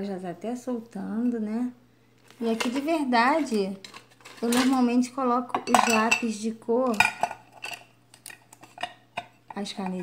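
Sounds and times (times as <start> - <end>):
pencils clinking in a metal tin: 2.5 - 5.1.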